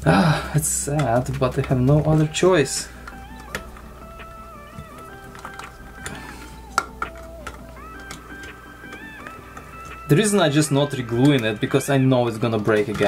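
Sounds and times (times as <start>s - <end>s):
soft slow background music: 0.0s - 13.0s
plastic headset earcup clicks: 1.0s - 11.9s.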